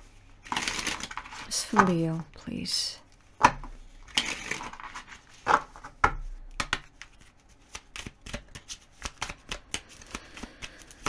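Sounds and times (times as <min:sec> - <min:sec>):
cards being shuffled: 0:00.4 - 0:02.1, 0:03.6 - 0:11.0.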